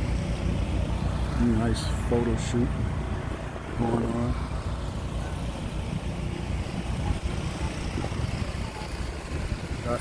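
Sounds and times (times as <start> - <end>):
wind buffeting microphone: 4.3 - 10.0.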